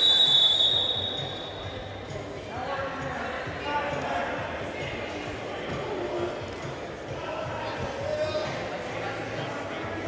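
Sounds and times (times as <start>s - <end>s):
referee's whistle: 0.0s - 1.7s.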